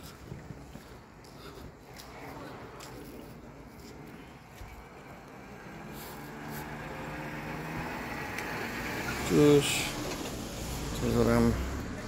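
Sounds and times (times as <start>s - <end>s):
passing road vehicle: 0.6s - 12.0s.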